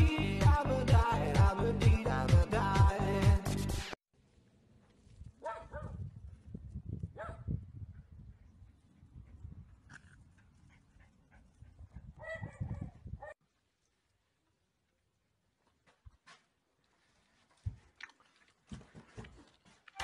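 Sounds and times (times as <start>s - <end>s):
dog barking: 5.4s - 6.0s, 7.2s - 7.6s, 12.2s - 13.4s.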